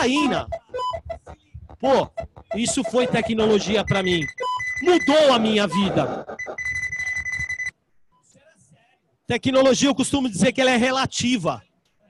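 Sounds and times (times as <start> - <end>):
high electronic beep: 0.0 - 7.7.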